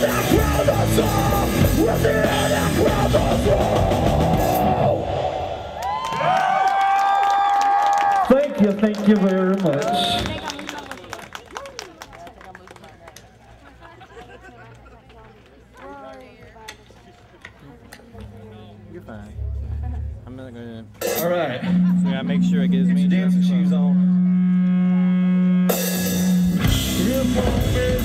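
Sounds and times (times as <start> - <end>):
heavy metal band playing: 0.0 - 5.5, 25.7 - 28.0
people yelling and whooping: 0.0 - 8.2.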